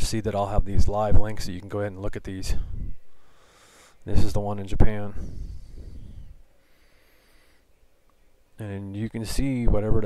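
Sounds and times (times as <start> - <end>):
man breathing: 2.6 - 4.1, 5.2 - 7.7.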